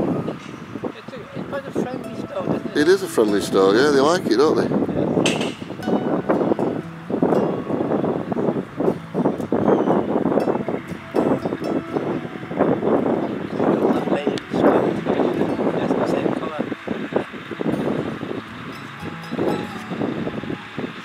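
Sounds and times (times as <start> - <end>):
indistinct talking: 0.0 - 21.0.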